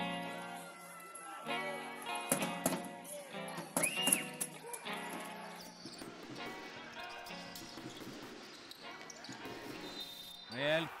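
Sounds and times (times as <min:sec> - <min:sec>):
basketball court noise: 0:02.3 - 0:11.0.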